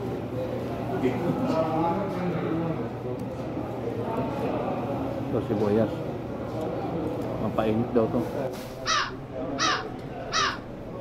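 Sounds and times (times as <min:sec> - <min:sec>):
bird harsh calls: 0:08.8 - 0:11.0.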